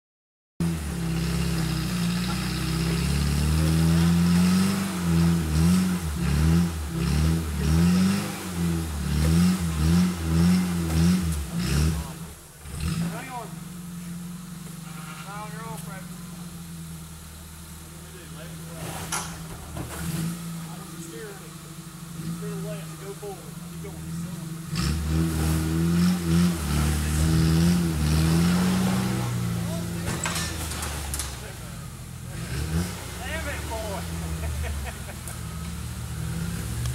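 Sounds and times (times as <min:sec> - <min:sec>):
off-road vehicle engine revving: 0:00.6 - 0:36.9.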